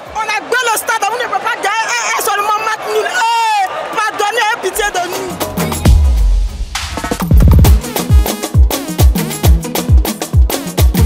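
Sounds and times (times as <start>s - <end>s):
stadium crowd: 0.0s - 7.0s
woman talking into a microphone: 0.1s - 5.4s
woman exclaiming: 0.2s - 5.4s
music with deep bass: 5.3s - 11.0s.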